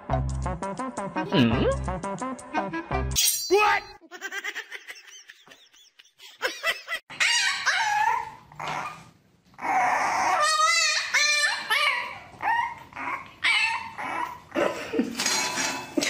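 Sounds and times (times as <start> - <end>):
puppy howling: 7.2 - 14.6.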